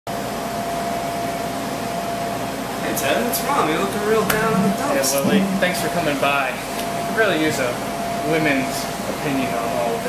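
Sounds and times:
air conditioning hum: 0:00.1 - 0:10.0
constant mid-pitched tone: 0:03.8 - 0:06.3.

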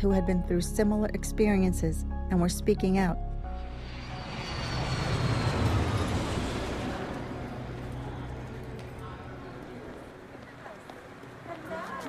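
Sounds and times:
faint high whine: 0:03.6 - 0:08.5
jet airliner flying past: 0:03.6 - 0:10.2.

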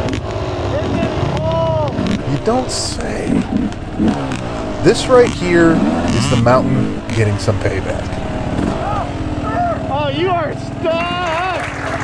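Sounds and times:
dirt bike engine at low revs: 0:02.0 - 0:10.0.

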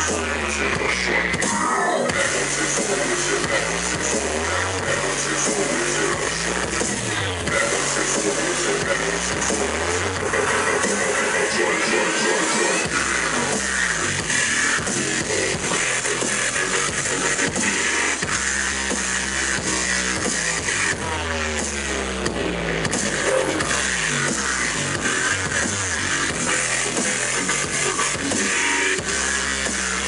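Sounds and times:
loud dubstep music: 0:00.0 - 0:30.0.

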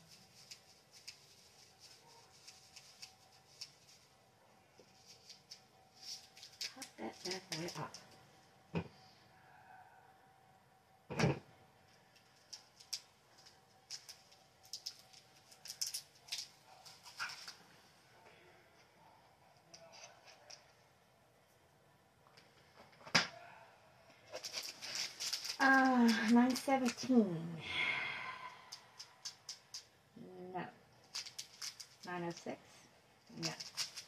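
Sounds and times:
plastic bag rustling: 0:24.3 - 0:27.3.

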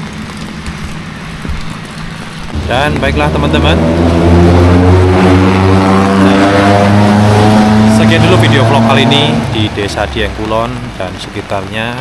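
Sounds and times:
vehicle engine accelerating: 0:02.5 - 0:11.3.

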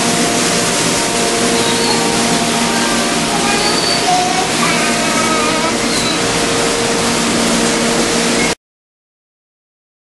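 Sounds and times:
faint steady hum: 0:00.0 - 0:08.6
loud rushing noise: 0:00.0 - 0:08.6
brief high whistles: 0:01.5 - 0:02.1, 0:03.6 - 0:04.2, 0:05.9 - 0:06.2.

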